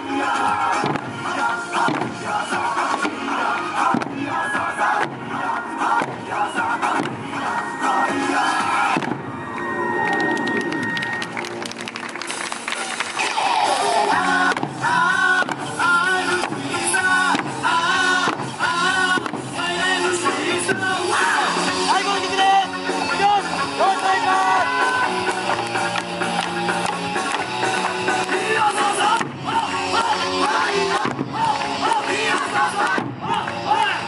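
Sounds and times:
barrel drums and hand drums: 0:00.8 - 0:01.2, 0:01.8 - 0:02.2, 0:02.9 - 0:03.2, 0:03.9 - 0:04.2, 0:14.4 - 0:21.4
performers shouting calls: 0:19.8 - 0:25.5.

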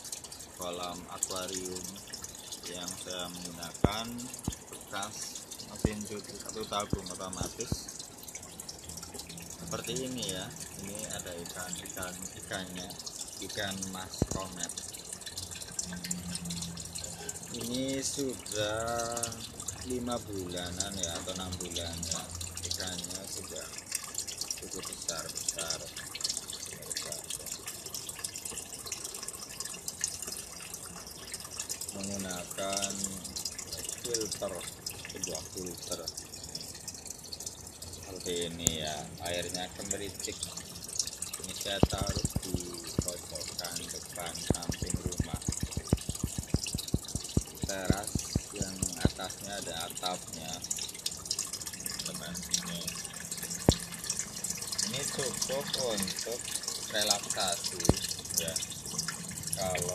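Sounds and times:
low steady hum: 0:00.0 - 0:59.9
water pouring into tub: 0:00.0 - 0:59.9.

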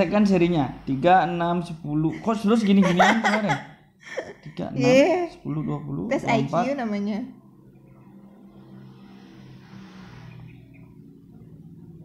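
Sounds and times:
soft rush of noise: 0:07.4 - 0:12.0.

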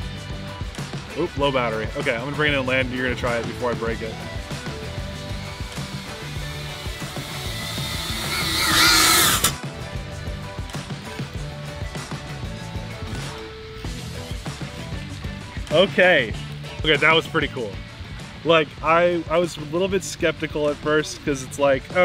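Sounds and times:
background music: 0:00.0 - 0:22.0
drone propellers whining: 0:04.2 - 0:09.6.

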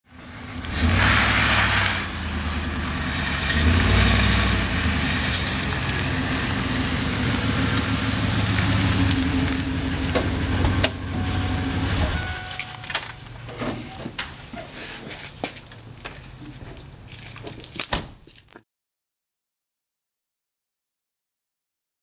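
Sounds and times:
van engine running: 0:00.0 - 0:17.7.

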